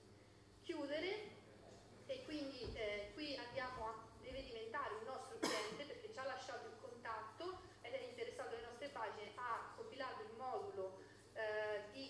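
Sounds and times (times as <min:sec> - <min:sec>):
woman speaking: 0:00.7 - 0:01.3, 0:02.1 - 0:12.0
person coughing: 0:05.4 - 0:05.9.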